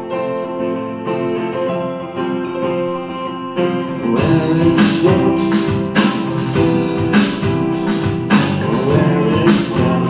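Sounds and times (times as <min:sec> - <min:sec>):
acoustic guitar: 0:00.0 - 0:10.0
keyboard notes: 0:00.0 - 0:10.0
live band playing: 0:00.0 - 0:10.0.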